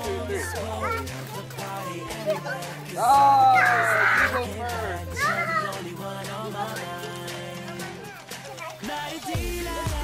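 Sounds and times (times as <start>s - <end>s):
background music: 0.0s - 10.0s
child squealing: 3.0s - 4.5s, 5.1s - 5.8s.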